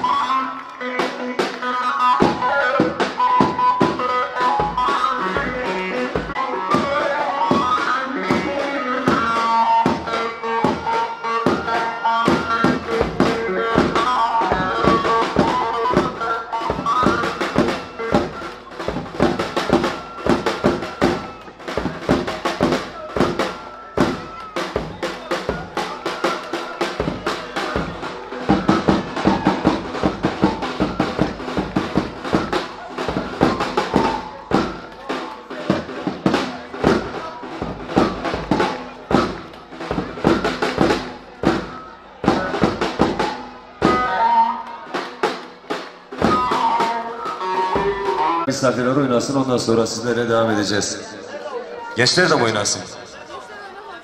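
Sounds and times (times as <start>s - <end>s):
heavy drum beat: 1.0s - 48.5s.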